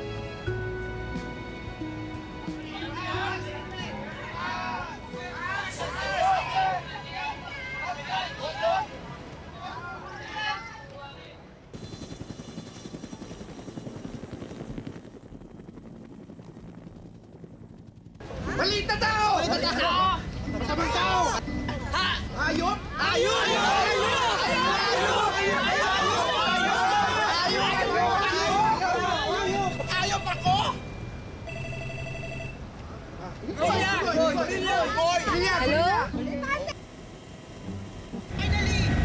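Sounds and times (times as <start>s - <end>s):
helicopter rotor chop: 11.8s - 19.6s, 36.5s - 39.0s
electronic phone ringtone: 29.3s - 32.7s
thin high whine: 29.3s - 32.7s, 36.6s - 39.0s.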